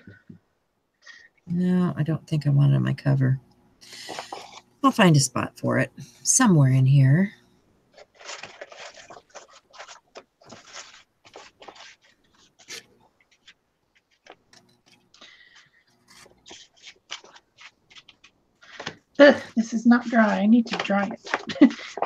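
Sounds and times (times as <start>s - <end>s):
paper rustling: 4.0s - 4.7s, 7.9s - 22.0s
small scrapes and taps: 4.0s - 4.7s, 8.0s - 19.0s, 20.0s - 22.0s.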